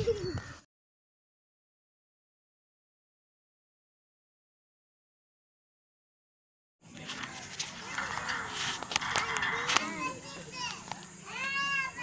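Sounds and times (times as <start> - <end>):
crowd chatter: 6.8 - 12.0
children's voices: 7.2 - 12.0.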